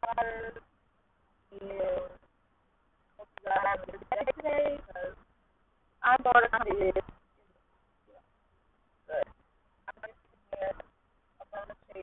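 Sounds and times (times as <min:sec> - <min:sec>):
woman speaking over telephone: 0:00.0 - 0:00.6, 0:01.5 - 0:02.2, 0:03.2 - 0:05.2, 0:06.0 - 0:07.1, 0:09.9 - 0:10.8, 0:11.4 - 0:12.0.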